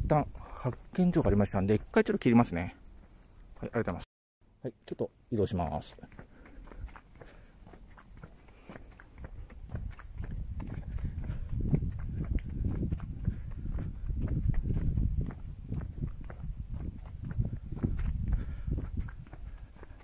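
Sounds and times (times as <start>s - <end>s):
footsteps on asphalt: 5.8s - 20.0s.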